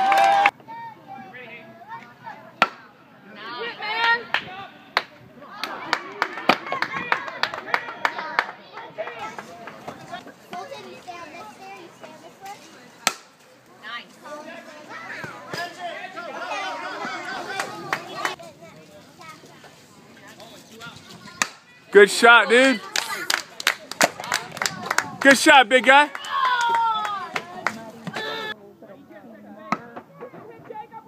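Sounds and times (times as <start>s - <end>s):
people chattering and calling: 0.0s - 31.0s.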